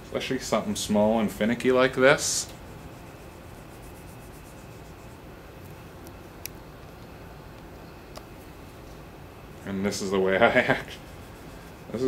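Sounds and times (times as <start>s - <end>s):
sandpaper rubbing on wood: 2.2s - 5.2s.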